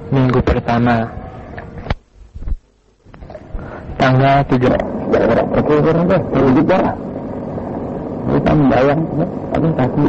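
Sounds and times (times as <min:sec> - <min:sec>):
steady low background noise: 0:00.0 - 0:10.0
man speaking: 0:04.0 - 0:07.1, 0:08.2 - 0:10.0.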